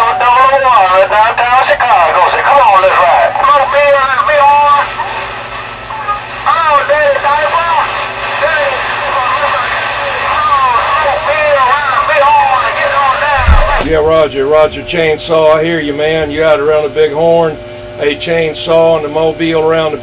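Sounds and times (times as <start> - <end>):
voice over radio speaker: 0.0 - 5.2, 5.9 - 17.5
steady hum: 1.2 - 20.0.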